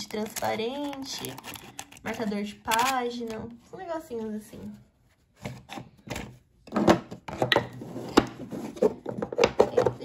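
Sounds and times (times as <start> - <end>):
stationery packed into a box: 0.0 - 3.4.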